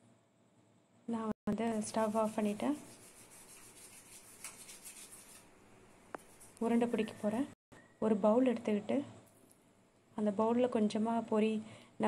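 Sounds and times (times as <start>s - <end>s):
woman talking: 1.1s - 2.8s, 6.6s - 9.2s, 10.2s - 11.7s.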